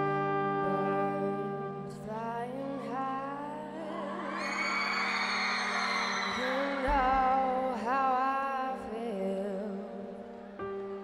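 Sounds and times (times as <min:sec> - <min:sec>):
woman singing with vibrato: 0:00.6 - 0:10.1
horn section playing: 0:03.9 - 0:07.9.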